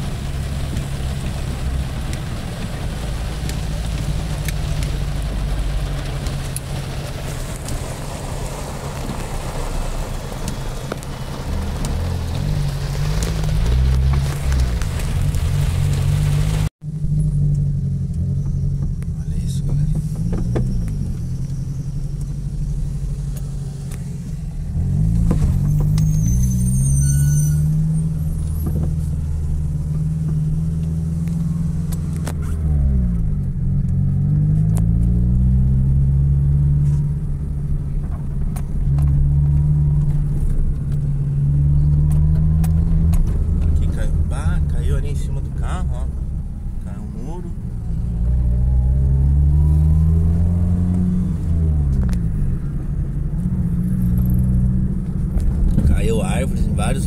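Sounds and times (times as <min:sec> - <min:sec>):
car engine accelerating: 0:00.0 - 0:57.0
road noise inside car: 0:00.0 - 0:57.0.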